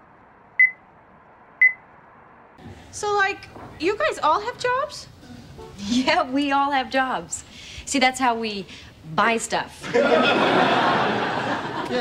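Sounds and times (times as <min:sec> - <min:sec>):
crossing signal short high beeps: 0:00.6 - 0:00.8, 0:01.6 - 0:01.8.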